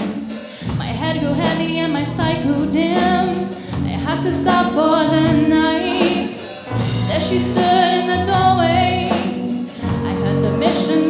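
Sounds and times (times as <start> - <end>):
bass guitar: 0.0 - 11.0
drum kit: 0.0 - 11.0
woman singing: 0.0 - 11.0.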